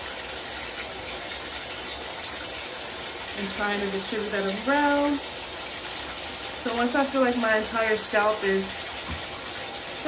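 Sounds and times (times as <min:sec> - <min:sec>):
water running from tap: 0:00.0 - 0:10.0.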